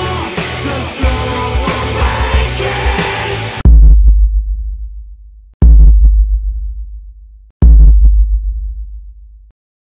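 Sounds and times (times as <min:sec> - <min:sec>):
deep electronic sub-bass boom: 0:03.6 - 0:09.5.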